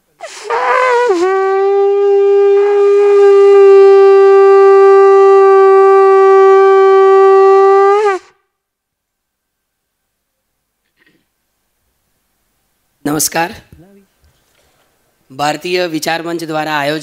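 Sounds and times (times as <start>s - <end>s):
conch shell blown: 0.5s - 8.5s.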